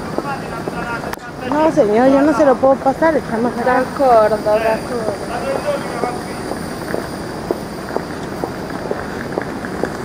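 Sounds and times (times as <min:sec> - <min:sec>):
high heels clicking on cobblestones: 0:00.0 - 0:10.0
suitcase wheels rolling on stones: 0:01.5 - 0:10.0.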